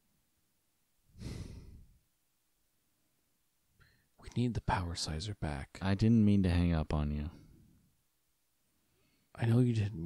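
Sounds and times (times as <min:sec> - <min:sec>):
person sighing: 0:01.2 - 0:02.0.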